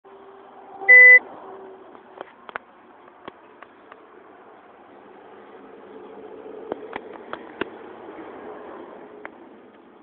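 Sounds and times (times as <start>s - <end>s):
short electronic beep: 0.9s - 1.2s.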